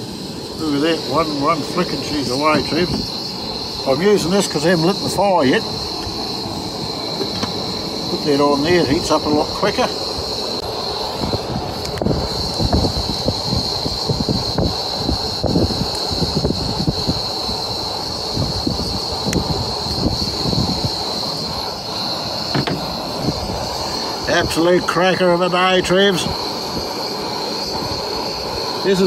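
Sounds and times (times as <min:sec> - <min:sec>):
low rumbling: 0:00.0 - 0:24.8
gas stove burner hissing: 0:00.0 - 0:29.0.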